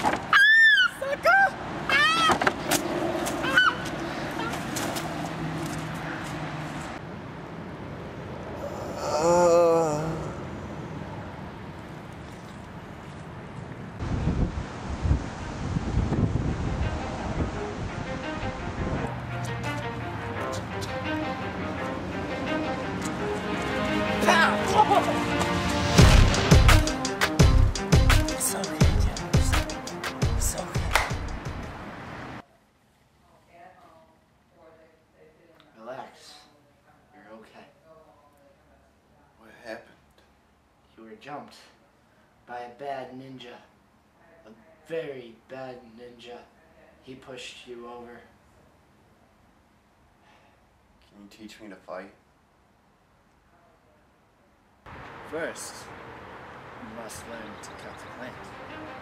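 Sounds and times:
wailing cry: 8.6 - 10.4
person shouting cries: 8.6 - 10.5, 24.2 - 25.2
music with steady beat: 19.3 - 31.7.

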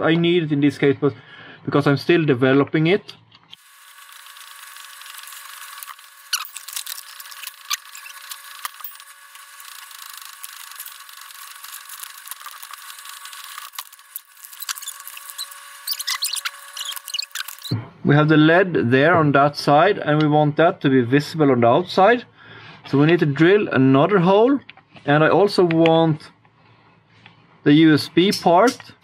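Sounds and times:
thin high whine: 3.5 - 17.8.

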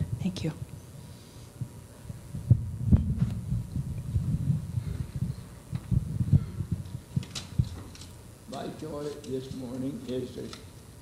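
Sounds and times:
microphone handling noise: 1.6 - 7.9.

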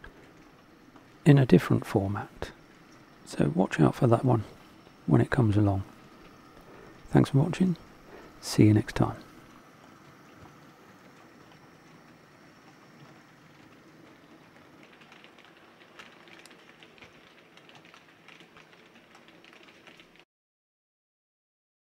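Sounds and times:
model train running: 0.0 - 20.2.

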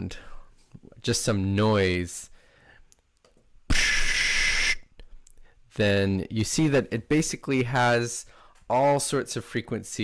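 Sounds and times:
short hissing noise: 3.7 - 4.9.

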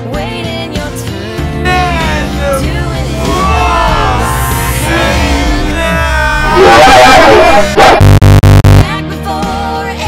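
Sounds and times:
music: 0.0 - 10.0
harsh stuttered buzzing tone: 6.9 - 8.9.

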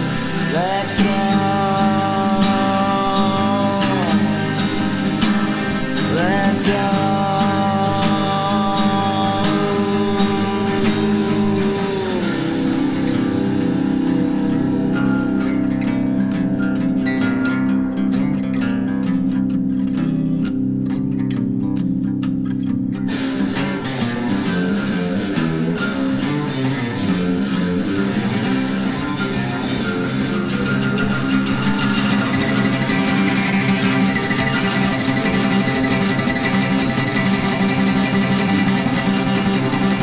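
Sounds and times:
electric bass: 0.0 - 40.0
guitar playing: 0.0 - 40.0.

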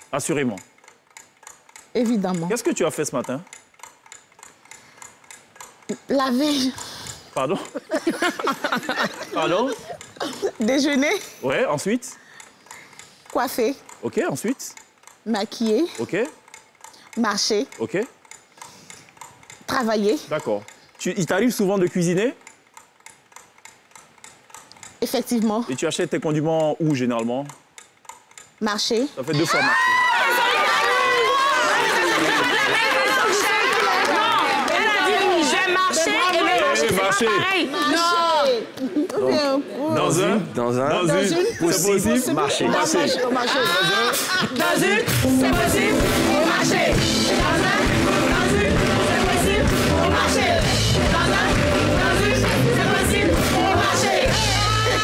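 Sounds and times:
clock ticking faintly: 0.0 - 29.4
overlapping chatter of voices: 29.3 - 55.0.

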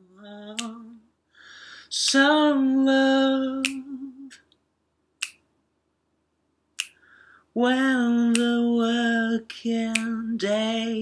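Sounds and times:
person singing: 0.0 - 1.1, 1.9 - 4.4, 7.5 - 11.0
finger snaps: 0.5 - 1.0, 3.6 - 4.6, 5.2 - 5.5, 6.8 - 7.1, 8.3 - 8.6, 9.9 - 10.3.

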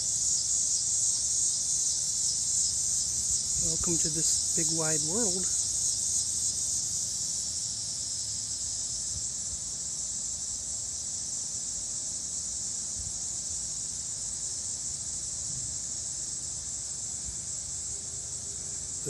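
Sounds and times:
high-pitched insect chorus: 0.0 - 19.0.

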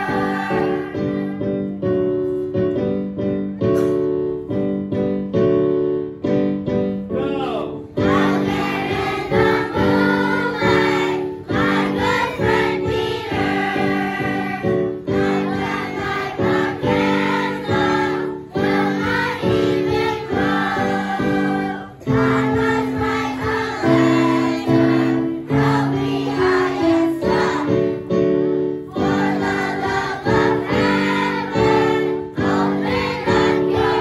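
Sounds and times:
children's choir singing: 0.0 - 1.7, 8.0 - 34.0
piano: 0.0 - 34.0.

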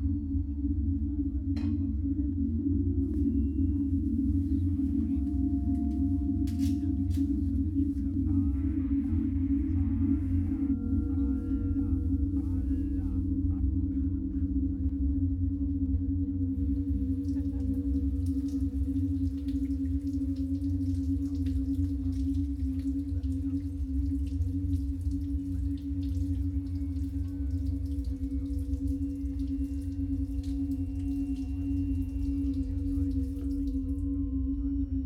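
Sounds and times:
electronic sine-wave drone: 0.0 - 35.0
low rumble: 0.0 - 35.0.

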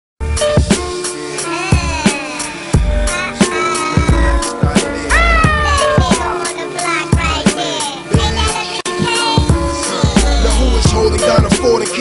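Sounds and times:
hip hop beat: 0.4 - 12.0
deep bass notes: 2.8 - 3.2, 4.1 - 6.4
kick drum and hi-hats: 4.0 - 6.4, 9.1 - 12.0.

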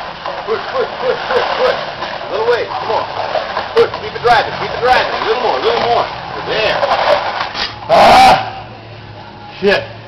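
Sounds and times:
sled scraping over asphalt: 0.0 - 8.0
people shouting encouragement: 7.9 - 8.7.

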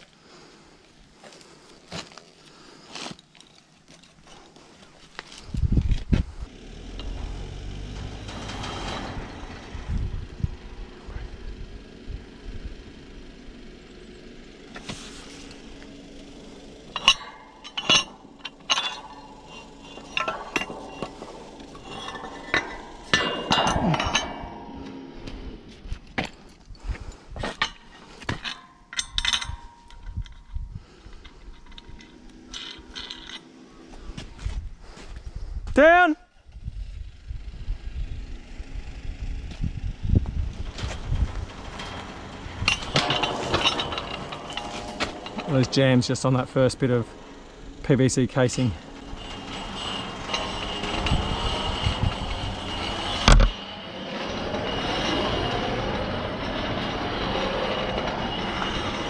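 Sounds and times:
metal pipes clinking and knocking: 6.9 - 11.0, 16.8 - 33.5, 40.6 - 59.0.

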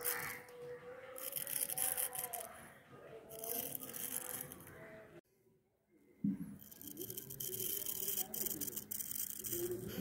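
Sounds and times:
razor scraping through hair: 1.2 - 2.5, 6.6 - 9.9.

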